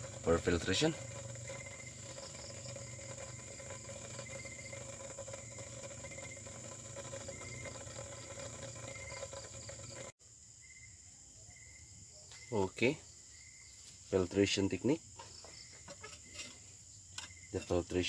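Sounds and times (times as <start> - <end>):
crickets chirping: 0.0 - 18.0.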